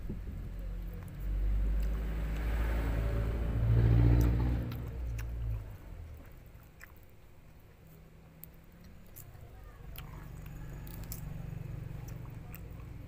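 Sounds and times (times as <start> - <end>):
vehicle engine passing: 0.0 - 6.4, 8.4 - 13.0.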